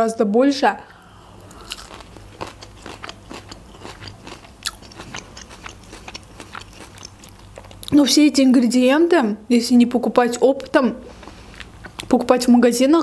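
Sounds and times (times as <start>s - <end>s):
chewing food: 1.0s - 8.0s, 11.1s - 12.2s.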